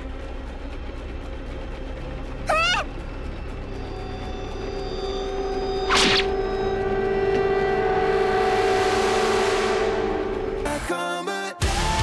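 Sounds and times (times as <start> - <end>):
sustained droning tone: 0.0 - 11.2.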